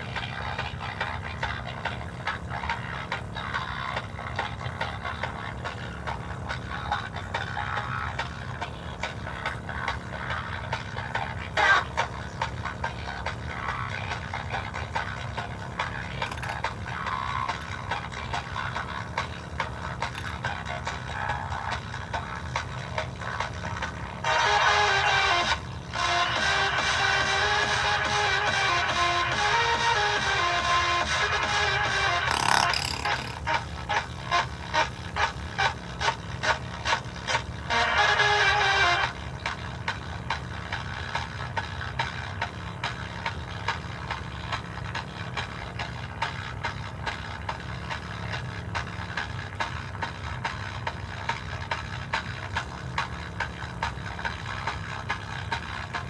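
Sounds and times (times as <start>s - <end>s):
music through bare speaker: 0.0s - 56.0s.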